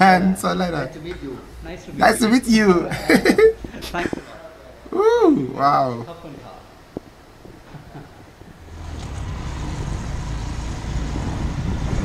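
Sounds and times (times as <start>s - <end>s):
wind noise: 6.8s - 12.0s.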